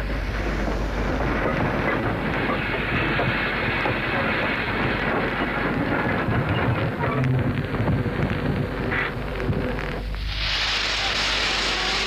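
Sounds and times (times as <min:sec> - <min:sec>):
train running on rails: 0:00.0 - 0:12.0.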